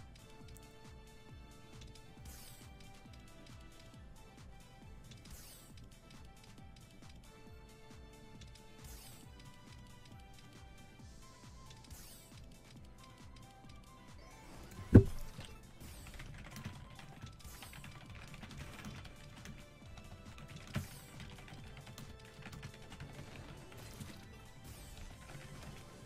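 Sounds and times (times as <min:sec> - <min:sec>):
light background music: 0:00.0 - 0:26.0
loud thump: 0:14.8 - 0:15.4.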